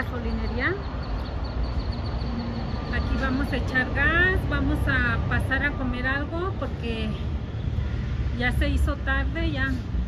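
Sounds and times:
woman speaking: 0:00.0 - 0:00.9, 0:02.8 - 0:07.3, 0:08.3 - 0:09.9.

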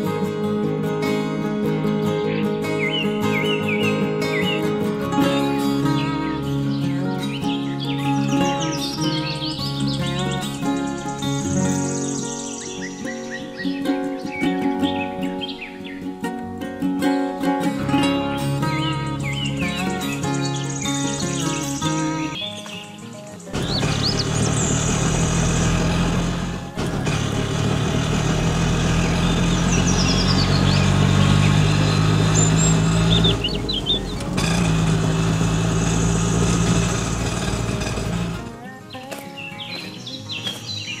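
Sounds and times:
acoustic guitar music: 0:00.0 - 0:41.0
birds chirping: 0:01.8 - 0:16.4, 0:17.8 - 0:41.0
small engine running: 0:07.3 - 0:13.4, 0:18.6 - 0:22.4, 0:23.4 - 0:38.6.

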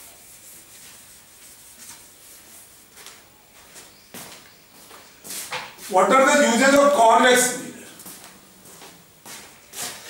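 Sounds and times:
duster rubbing on chalkboard: 0:00.0 - 0:03.1.

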